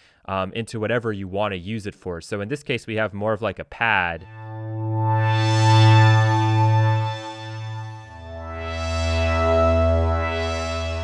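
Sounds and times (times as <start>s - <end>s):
synthesizer pad notes: 4.2s - 11.0s.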